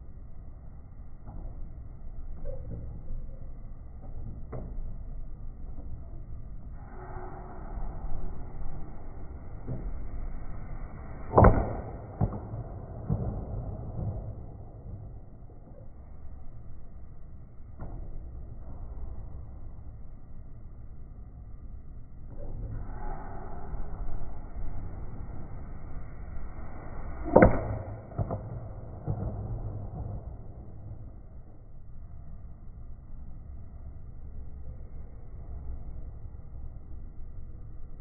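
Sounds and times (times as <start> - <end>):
baseball bat hitting ball: 11.3 - 15.1, 27.2 - 30.9.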